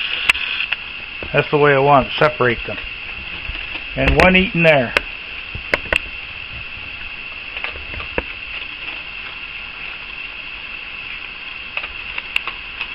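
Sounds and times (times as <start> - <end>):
high-pitched hiss: 0.0 - 12.9.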